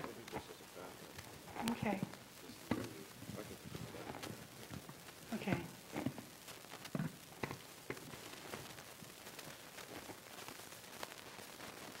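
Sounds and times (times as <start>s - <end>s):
light crackle: 0.0s - 12.0s
microphone hiss: 0.0s - 12.0s.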